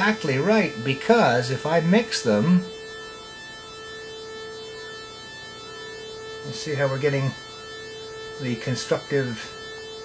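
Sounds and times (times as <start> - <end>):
buzzy synthesizer tone beating: 0.0 - 10.0.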